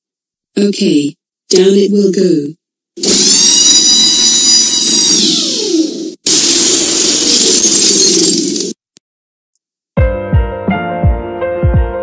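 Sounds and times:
cartoon crash with breaking glass: 3.0s - 8.8s
falling whistle tone: 3.3s - 5.9s.

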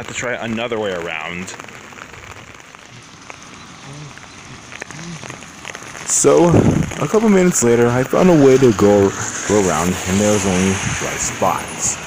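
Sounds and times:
raindrops ticking: 0.0s - 12.0s
steady rain falling: 0.0s - 12.0s.

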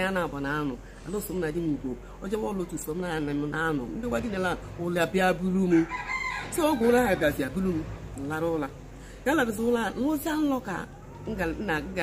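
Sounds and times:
woman speaking: 0.0s - 12.0s.

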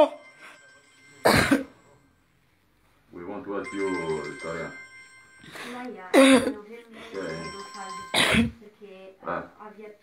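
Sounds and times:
person coughing: 1.2s - 1.8s, 6.1s - 6.6s, 8.1s - 8.6s.

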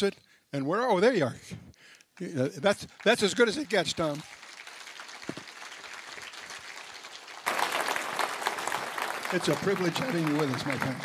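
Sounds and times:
large audience applauding: 2.3s - 11.0s.

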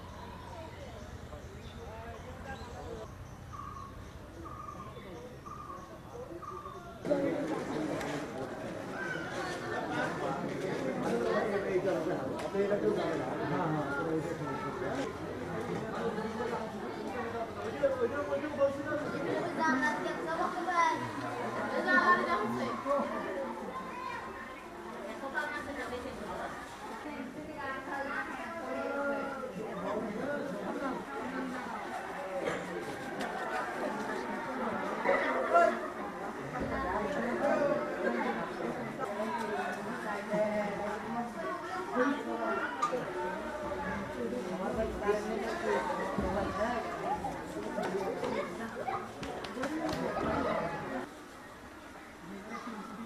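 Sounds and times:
people chattering: 0.0s - 53.0s.

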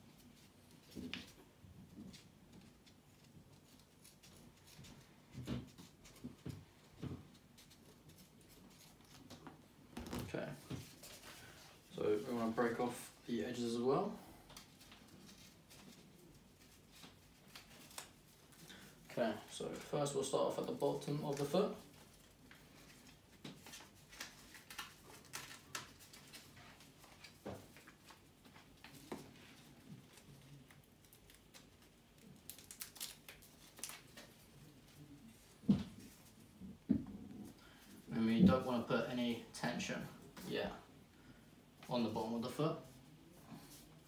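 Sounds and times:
paper backing peeling off tape: 14.6s - 18.9s, 30.0s - 34.8s.

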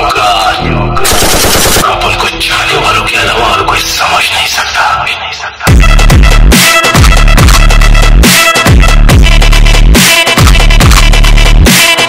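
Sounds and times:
machine-gun fire: 1.0s - 1.9s
dance music bass: 5.7s - 12.0s.

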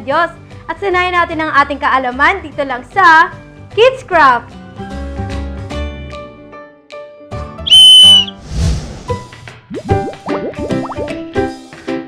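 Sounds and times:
background music: 0.0s - 7.7s, 8.6s - 12.0s
high-pitched whistle blast: 7.7s - 8.4s.

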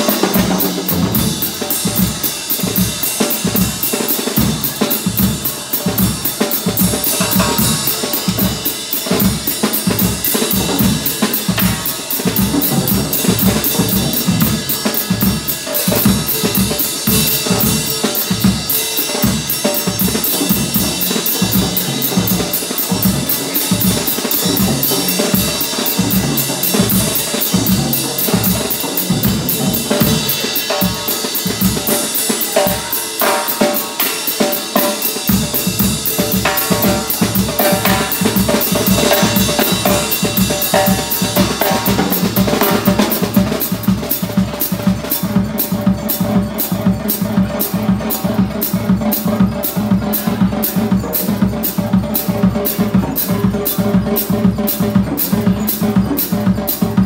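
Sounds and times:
drum kit solo: 0.0s - 57.0s.

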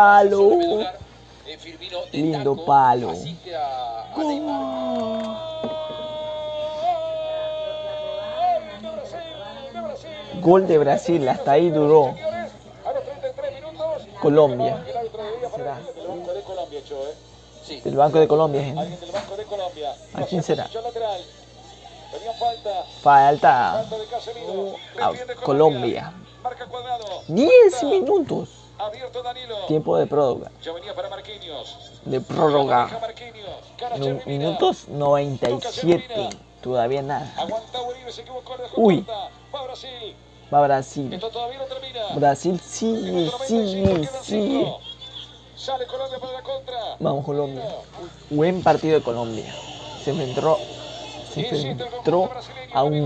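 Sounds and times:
man talking: 0.0s - 1.0s, 1.6s - 5.8s, 32.1s - 39.3s, 40.5s - 44.8s, 45.6s - 50.7s, 51.3s - 53.0s
quiet talking: 0.0s - 23.1s, 35.3s - 53.0s
steady low hum: 0.0s - 53.0s
person speaking: 4.1s - 6.1s, 42.1s - 44.8s.

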